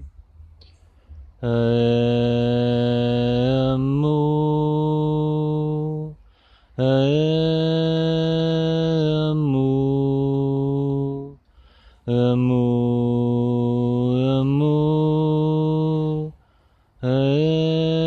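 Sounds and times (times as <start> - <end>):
person chanting: 1.2 - 11.4, 12.0 - 16.4, 17.0 - 18.0
breath: 6.2 - 6.8, 11.4 - 12.1, 16.4 - 17.0.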